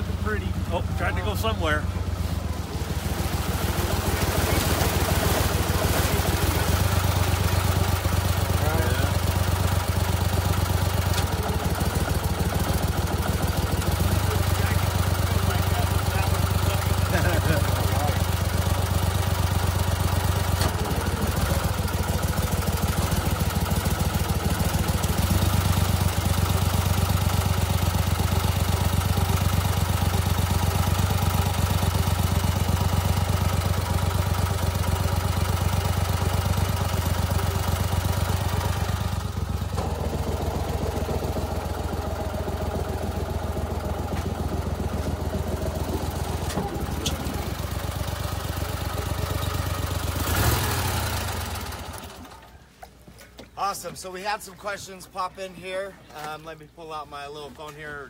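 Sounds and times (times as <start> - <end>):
boat motor running: 0.0 - 52.5.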